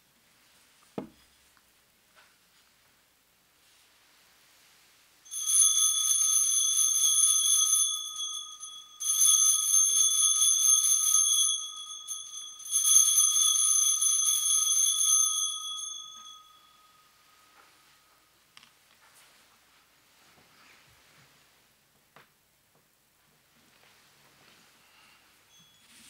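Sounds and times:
altar bells ringing: 5.3s - 18.3s, 24.9s - 26.0s.

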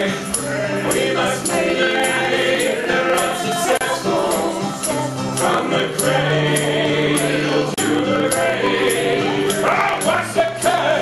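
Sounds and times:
acoustic guitar: 0.0s - 11.0s
tambourine jingling: 0.0s - 11.0s
upright bass: 0.0s - 11.0s
voices singing together: 0.0s - 11.0s.

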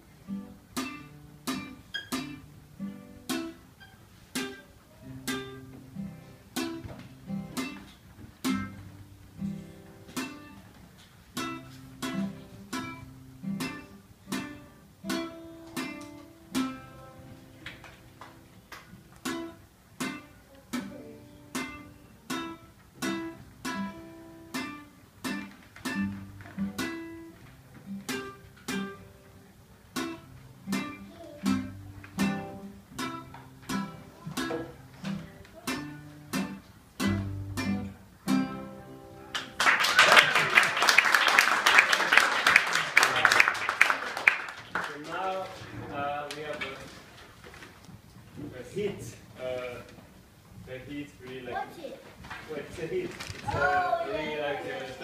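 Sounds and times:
classical guitar playing: 0.0s - 39.8s
audience applause: 39.3s - 46.5s.

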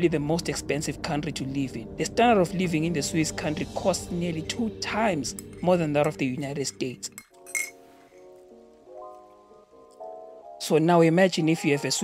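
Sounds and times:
quiet background music: 0.0s - 12.0s
metal spoon clinking on mug: 7.2s - 7.8s.

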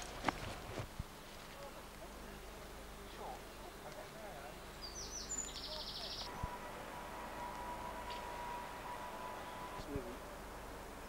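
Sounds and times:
bird trilling: 4.8s - 6.4s.

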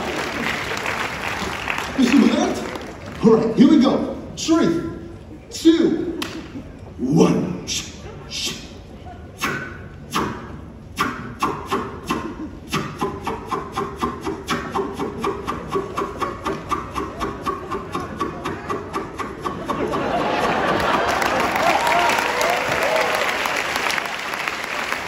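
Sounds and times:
crowd clapping in unison: 0.0s - 3.6s, 19.9s - 25.0s.

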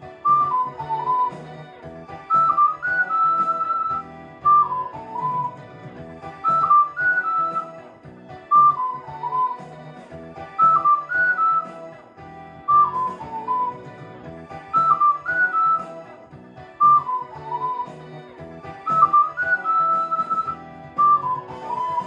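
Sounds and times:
backing track with bass line: 0.0s - 22.0s
ocarina melody: 0.0s - 22.0s.

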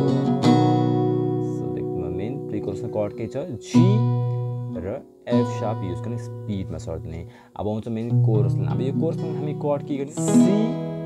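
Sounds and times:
acoustic guitar chord ringing: 0.0s - 11.0s
man speaking: 1.4s - 10.9s.

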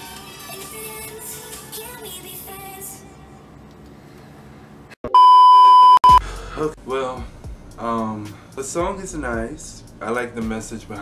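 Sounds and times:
steady high test tone beep: 5.1s - 6.2s.

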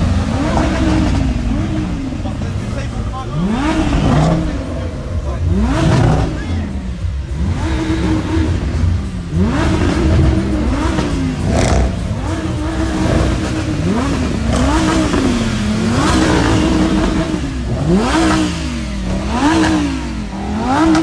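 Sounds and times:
sports car engines revving: 0.0s - 21.0s.

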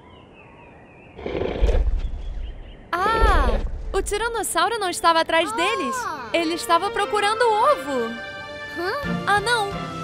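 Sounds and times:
deep rumbling dinosaur roar: 1.2s - 2.4s, 3.0s - 4.1s.

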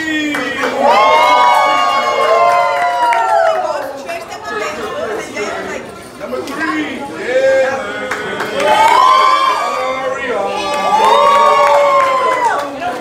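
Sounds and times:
children cheering: 0.6s - 3.8s, 10.6s - 12.8s.

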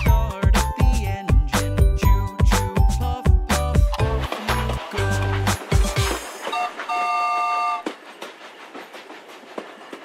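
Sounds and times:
train wheels clattering: 4.0s - 10.0s
train whistle: 6.5s - 8.0s.

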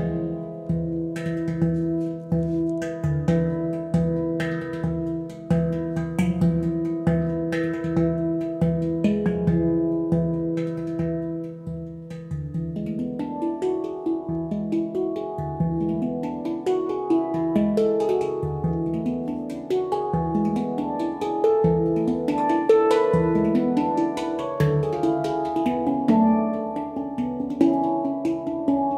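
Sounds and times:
handpans played by hand: 0.0s - 28.9s.

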